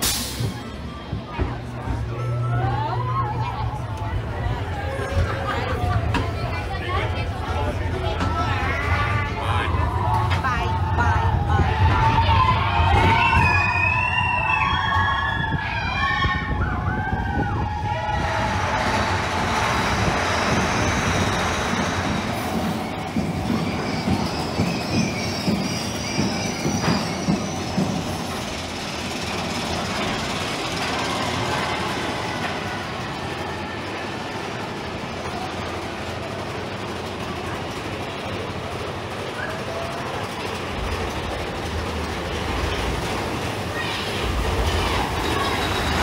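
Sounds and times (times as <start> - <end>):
roller coaster cars rumbling: 0.0 - 46.0.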